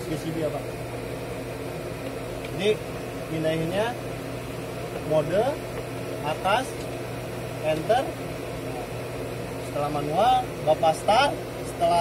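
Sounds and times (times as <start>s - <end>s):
generator engine droning: 0.0s - 12.0s.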